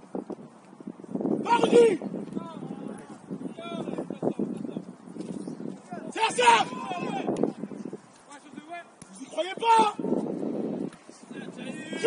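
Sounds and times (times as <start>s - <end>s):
loud shout: 1.4s - 2.9s, 6.0s - 7.4s, 9.3s - 10.1s
voices calling out: 5.8s - 7.8s.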